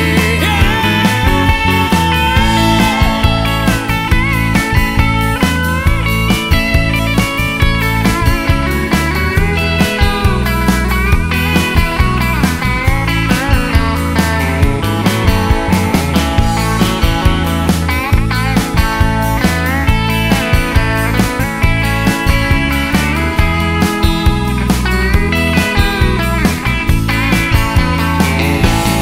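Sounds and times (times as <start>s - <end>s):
instrumental rock band: 0.0s - 29.0s.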